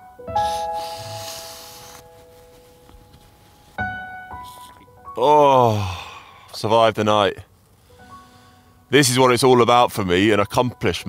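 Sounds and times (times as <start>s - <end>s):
held piano notes: 0.0s - 5.9s
soft hiss: 0.3s - 5.1s, 7.4s - 9.0s.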